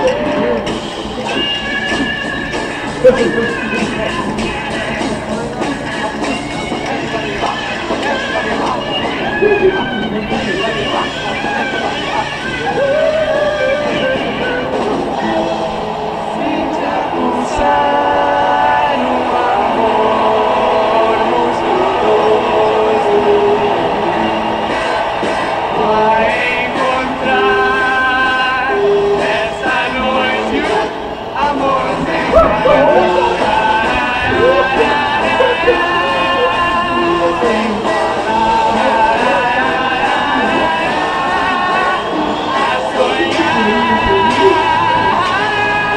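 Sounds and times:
psychedelic rock band playing: 0:31.9 - 0:42.4.

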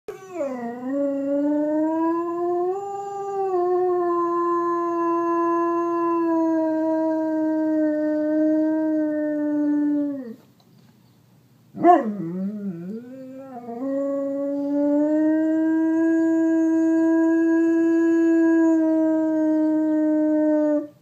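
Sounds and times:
dog howling: 0:00.1 - 0:10.4, 0:11.8 - 0:20.9.

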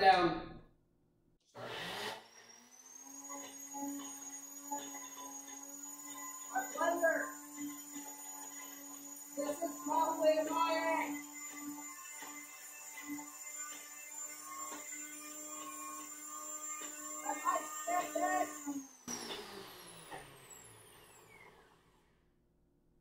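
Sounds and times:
blender motor running: 0:01.6 - 0:22.2.

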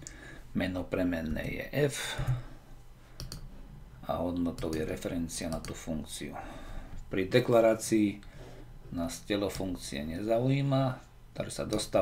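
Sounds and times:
computer input clicks: 0:03.2 - 0:03.4.

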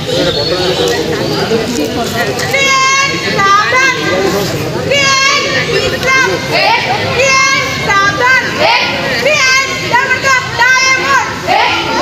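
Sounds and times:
children's voices: 0:02.3 - 0:12.0.

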